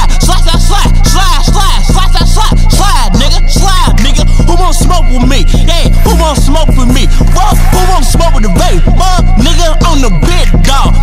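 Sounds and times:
rapping over heavy bass beat: 0:00.0 - 0:11.0.

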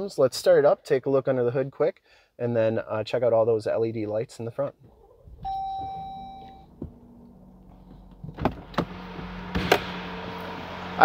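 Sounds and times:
car engine starting and idling: 0:04.8 - 0:11.0
dashboard chime: 0:05.4 - 0:06.7.

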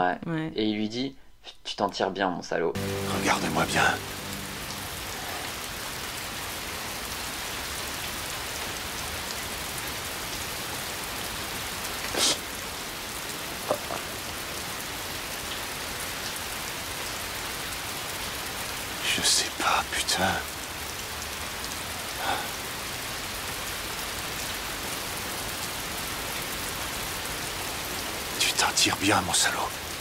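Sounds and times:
heavy rain: 0:02.8 - 0:30.0.

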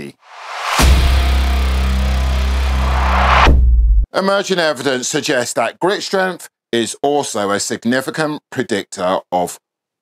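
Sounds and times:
buzzy bass drone: 0:00.4 - 0:04.1.

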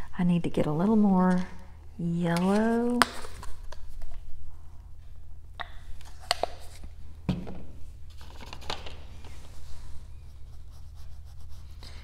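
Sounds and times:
steady low hum: 0:00.0 - 0:12.0
paintbrush scratching on fabric: 0:10.2 - 0:12.0.

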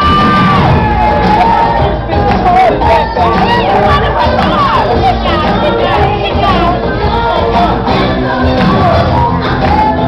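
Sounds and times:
crowd cheering and shouting: 0:00.0 - 0:10.0
loud pop music: 0:00.0 - 0:10.0.

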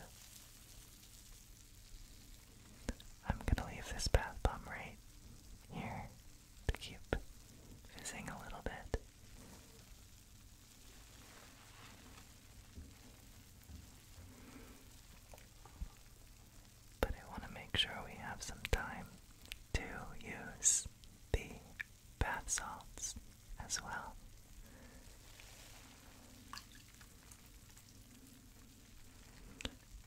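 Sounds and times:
person whispering: 0:02.9 - 0:05.0, 0:05.7 - 0:07.2, 0:07.9 - 0:09.0, 0:17.0 - 0:24.2
bath bubbles fizzing: 0:24.4 - 0:30.0.

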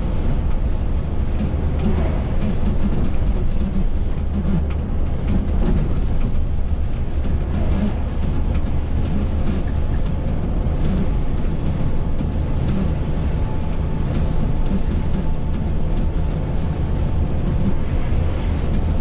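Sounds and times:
diesel engine rumble: 0:00.0 - 0:19.0
tyre and road noise: 0:00.0 - 0:19.0.

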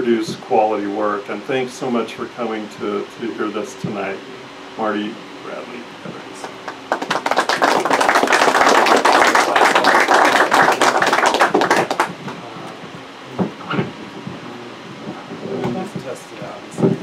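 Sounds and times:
audience applauding: 0:06.4 - 0:12.2
quiet voices: 0:12.3 - 0:17.0.

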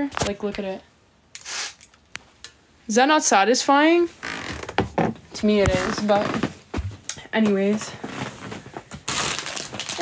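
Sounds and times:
perfume atomizer spraying: 0:01.4 - 0:02.0.

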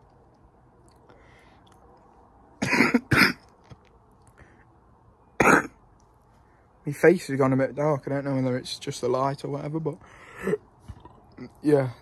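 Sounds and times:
man coughing: 0:02.6 - 0:03.4, 0:05.4 - 0:05.7, 0:10.4 - 0:10.6.

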